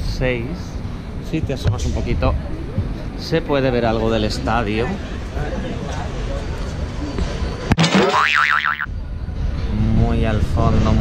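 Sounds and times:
cartoon boing sound effect: 0:07.7 - 0:08.9.

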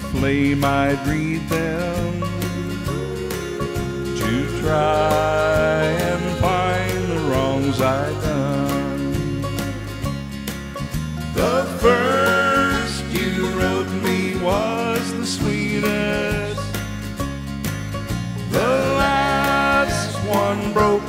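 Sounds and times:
guitar and bass accompaniment: 0:00.0 - 0:21.0
sliding lead instrument notes: 0:00.0 - 0:21.0.

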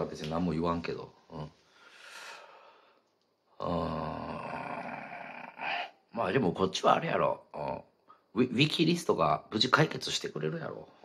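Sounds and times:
man groaning: 0:03.6 - 0:06.0.

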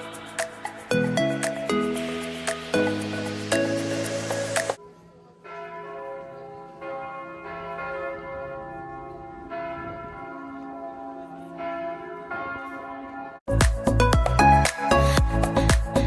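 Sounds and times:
church bells ringing: 0:00.0 - 0:04.2, 0:04.8 - 0:13.5.

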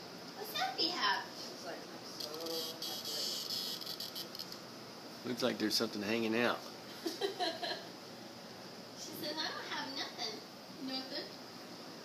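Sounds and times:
insect buzzing: 0:02.2 - 0:04.6.

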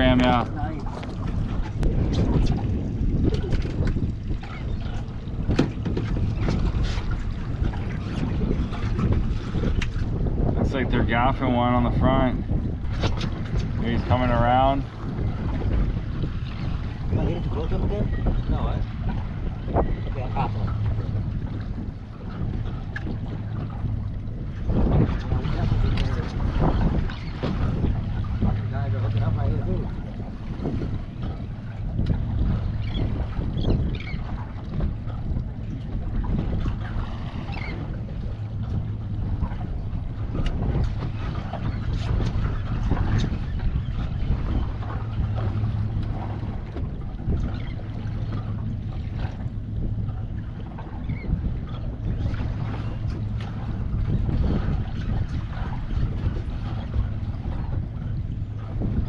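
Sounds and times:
boat engine idling: 0:00.0 - 0:59.0
water splashing at hull: 0:00.0 - 0:59.0
wind buffeting microphone: 0:00.0 - 0:59.0.

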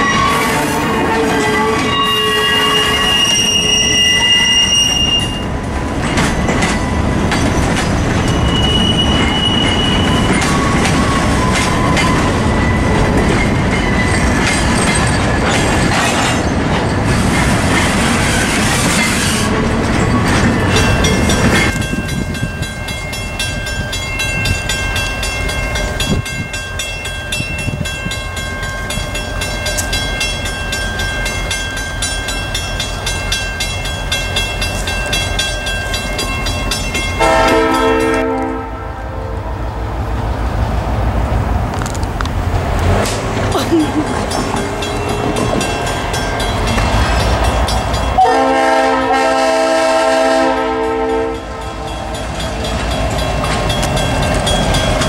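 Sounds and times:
steel wheels squealing on rail: 0:00.0 - 0:38.6
freight train rolling past: 0:00.0 - 0:55.0.

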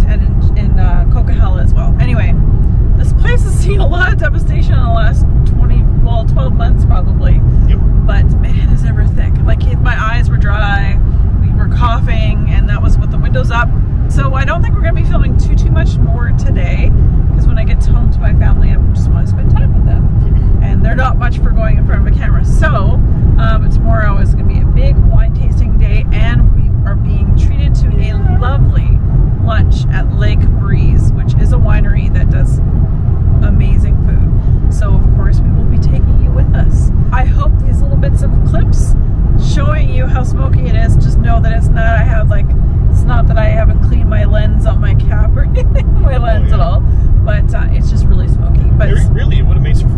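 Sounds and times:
woman talking: 0:00.0 - 0:02.4, 0:03.0 - 0:32.6, 0:33.4 - 0:49.5
car road and engine rumble: 0:00.0 - 0:49.9.

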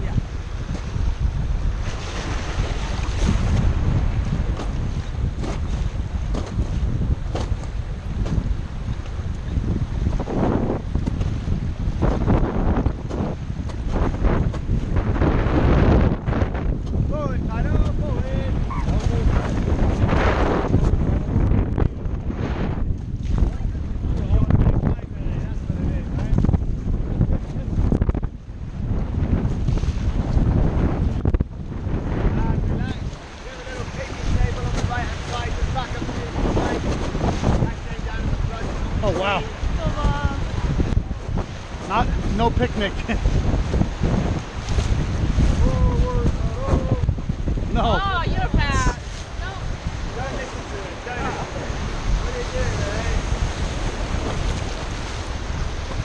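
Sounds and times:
wind buffeting microphone: 0:00.0 - 0:56.0
fast river water rushing: 0:07.6 - 0:21.6, 0:31.8 - 0:56.0.

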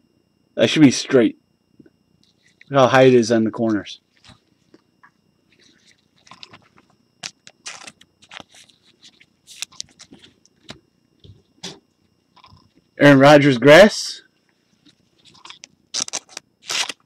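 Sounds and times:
trading cards rustling and clicking: 0:05.5 - 0:10.8.

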